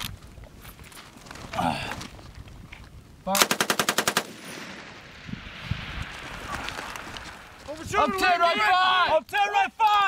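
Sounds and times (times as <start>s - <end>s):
machine-gun burst echo: 3.4s - 5.0s.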